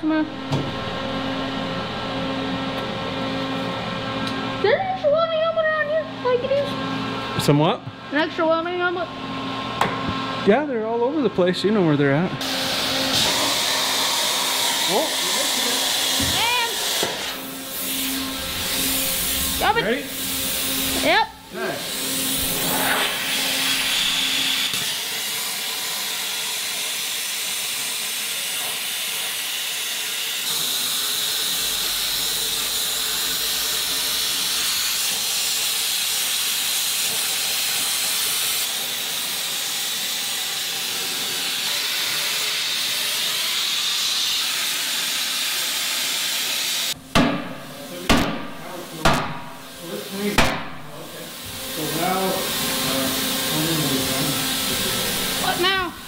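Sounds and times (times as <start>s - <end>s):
plasma cutter hissing: 12.4s - 56.0s
sharp loud bangs: 47.1s - 49.6s.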